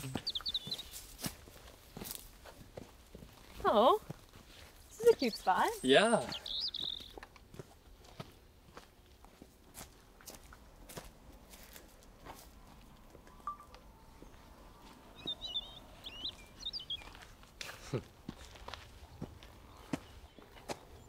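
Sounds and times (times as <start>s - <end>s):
bird chirping: 0.0s - 1.2s, 4.9s - 7.3s, 13.2s - 17.4s, 19.0s - 21.0s
footsteps on dirt trail: 0.0s - 13.5s, 14.1s - 21.0s.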